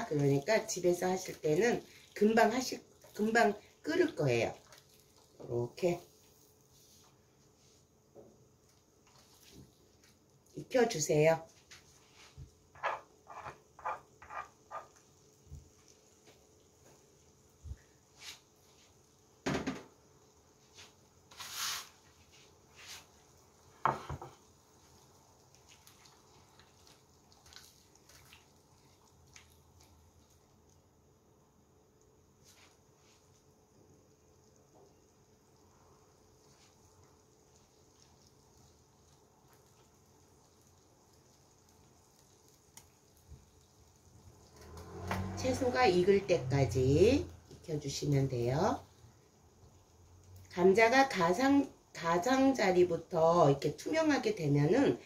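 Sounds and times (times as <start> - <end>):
faint steady hiss: 0.0 - 55.0.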